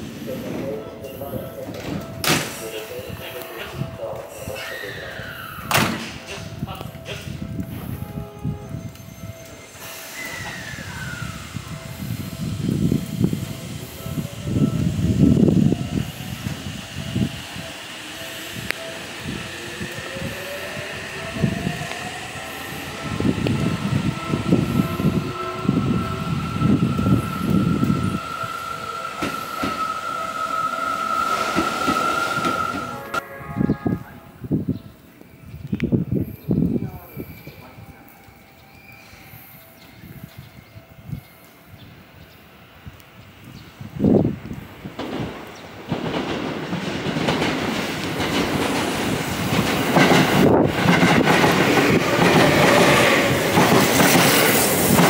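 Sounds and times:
train wheels rumbling: 0.0s - 55.0s
electric train inverter whine: 5.4s - 45.4s.

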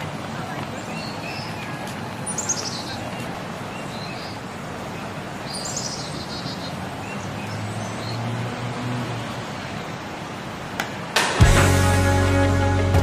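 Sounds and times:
birds chirping: 0.0s - 10.4s.

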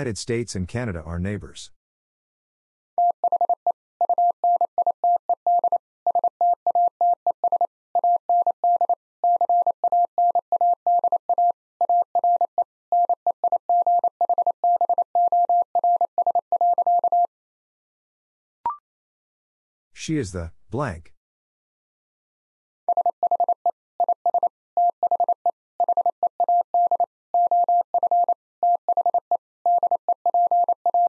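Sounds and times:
morse code beeps: 3.0s - 17.3s, 22.9s - 31.0s.

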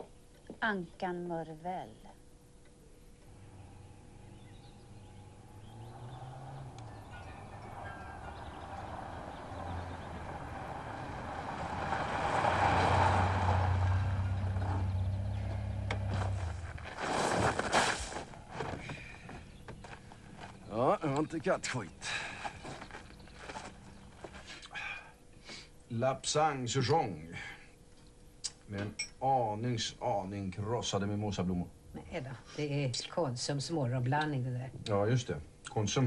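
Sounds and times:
car engine hum: 3.2s - 24.6s.

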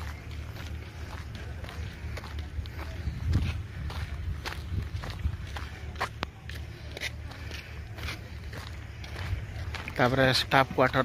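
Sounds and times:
footsteps walking: 0.0s - 11.0s
low steady rumble: 0.0s - 11.0s.

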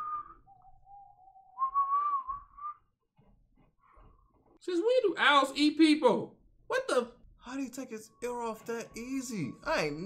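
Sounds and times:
man whistling: 0.0s - 2.9s.

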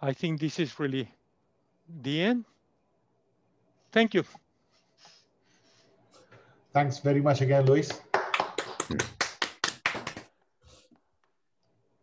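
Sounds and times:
person clapping: 7.6s - 10.4s.

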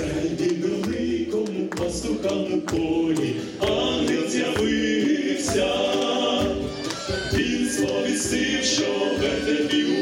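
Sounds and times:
vocal ensemble singing carol: 0.0s - 10.0s.

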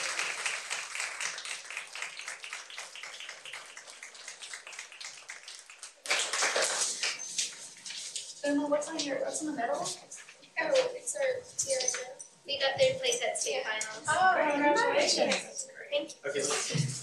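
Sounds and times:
crowd applauding: 0.0s - 7.7s.

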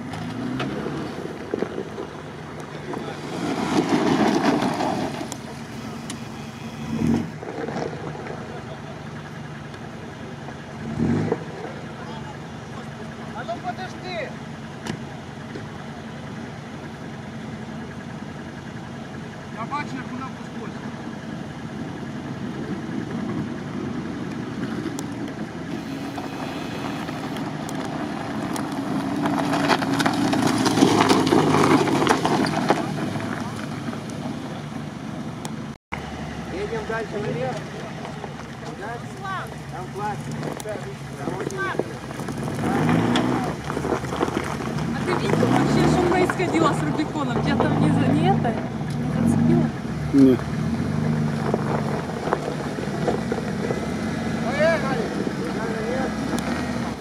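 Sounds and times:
engine running low: 0.0s - 57.0s
vehicle rolling on snowy track: 0.0s - 57.0s.

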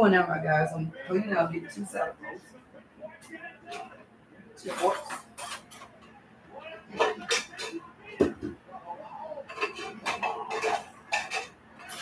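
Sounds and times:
dishes and cutlery clattering: 4.6s - 6.0s, 6.9s - 8.6s, 9.4s - 12.0s.

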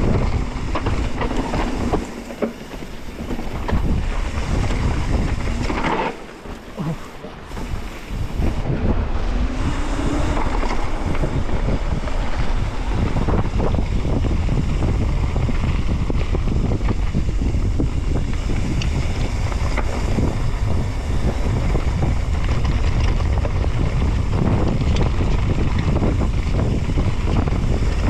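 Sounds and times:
bike rattling and knocking: 0.0s - 28.0s
tyres rolling over dirt trail: 0.0s - 28.0s
wind buffeting microphone: 0.0s - 28.0s.

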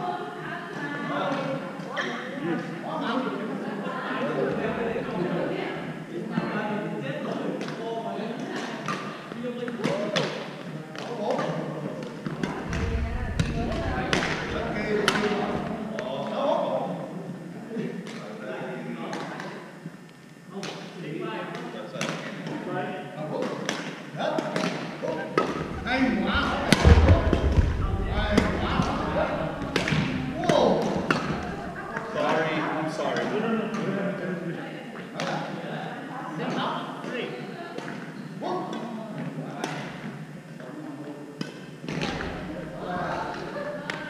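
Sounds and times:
voices echoing in hall: 0.0s - 44.0s
background voices: 12.2s - 16.0s, 25.2s - 32.8s.

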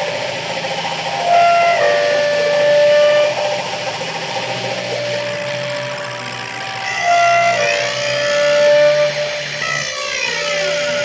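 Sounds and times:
electronic noise and drone: 0.0s - 11.0s
held electronic tones: 0.0s - 11.0s.

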